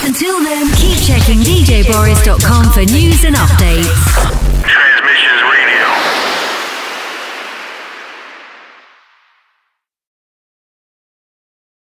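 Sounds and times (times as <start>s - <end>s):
radio jingle: 0.8s - 9.4s
whoosh effect: 5.2s - 9.4s.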